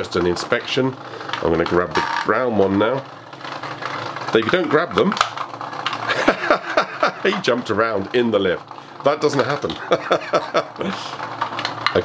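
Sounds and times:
man chuckling: 6.1s - 7.4s, 9.7s - 11.2s
plastic parts being handled: 9.3s - 12.0s.

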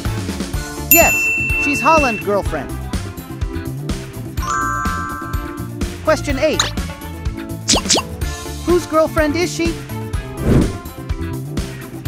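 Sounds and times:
background music: 0.0s - 12.0s
bright ding: 0.9s - 2.4s, 4.4s - 5.7s.

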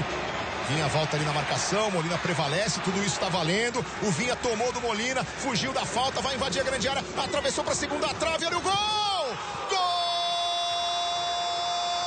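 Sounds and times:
commentator's long goal shout: 8.6s - 12.0s.

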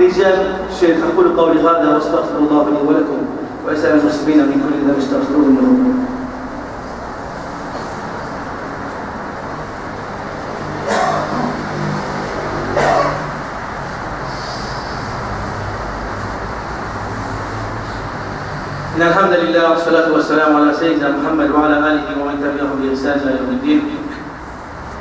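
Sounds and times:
hall hum and hiss: 0.0s - 25.0s.

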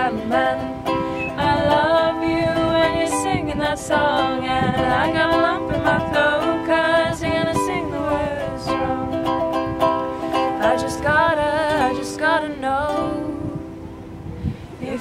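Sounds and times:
women singing: 0.0s - 9.7s, 10.3s - 13.8s, 14.7s - 15.0s
ukulele strumming: 0.0s - 15.0s.

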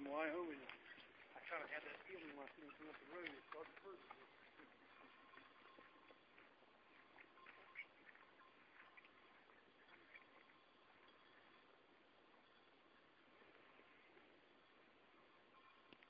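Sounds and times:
faint steady high tone: 0.0s - 16.0s.

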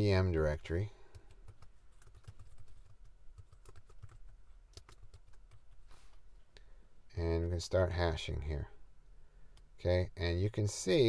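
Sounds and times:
faint keyboard typing: 1.0s - 6.2s.

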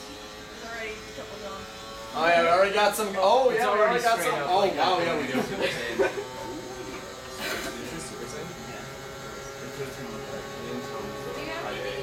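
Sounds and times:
electric generator buzzing: 0.0s - 12.0s.

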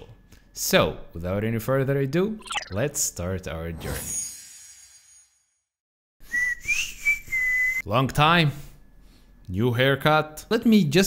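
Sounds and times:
person whistling high note: 6.2s - 7.8s.

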